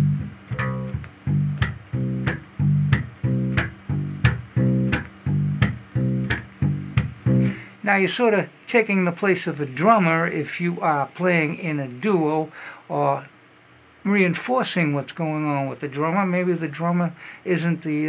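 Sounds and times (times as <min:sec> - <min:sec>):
slapped electric bass line: 0:00.0 - 0:07.7.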